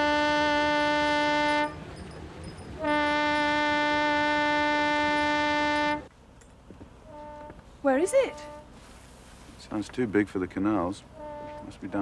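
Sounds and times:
ship's horn blasts: 0.0s - 1.9s, 2.8s - 6.1s, 7.0s - 8.8s, 11.1s - 12.0s.

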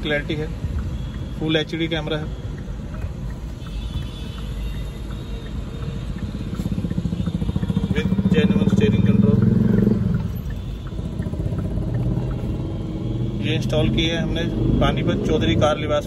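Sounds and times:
vehicle engine pulsing hum: 0.0s - 16.0s.

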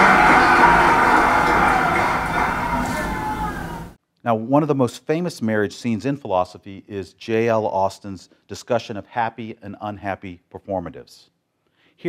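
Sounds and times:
recorded music over speakers: 0.0s - 4.0s.

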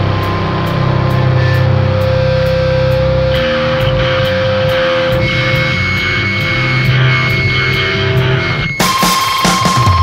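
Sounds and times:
cymbal strikes: 0.0s - 10.0s
hardcore punk band playing: 0.0s - 10.0s
ringing guitar note: 0.0s - 10.0s.

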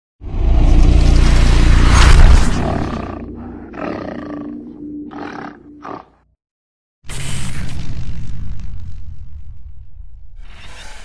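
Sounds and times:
animal roars and grunts: 0.3s - 6.2s
held low music tone: 0.6s - 5.8s.

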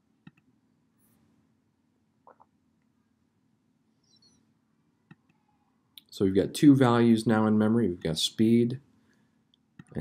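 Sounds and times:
faint high chirp: 3.9s - 4.6s.

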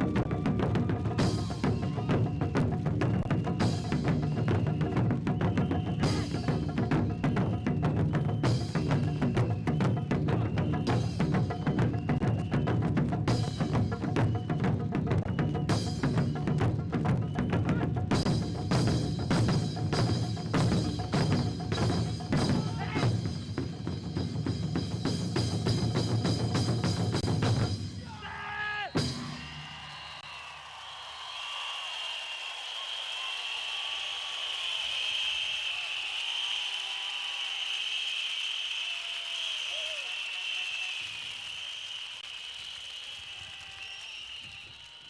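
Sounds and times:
crowd cheering and applauding: 0.0s - 19.0s, 20.7s - 23.2s, 28.0s - 45.0s
taiko drums beaten fast: 0.0s - 30.2s
high-pitched whistling: 28.7s - 45.0s.

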